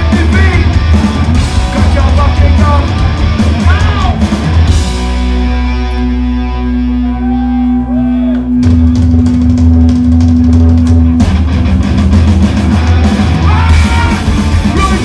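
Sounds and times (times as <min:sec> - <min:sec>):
punk band playing live: 0:00.0 - 0:15.0.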